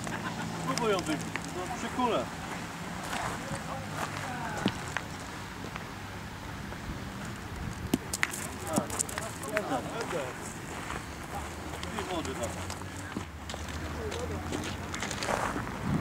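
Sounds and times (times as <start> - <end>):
metal balls striking gravel: 0.0 - 2.2, 7.8 - 10.2.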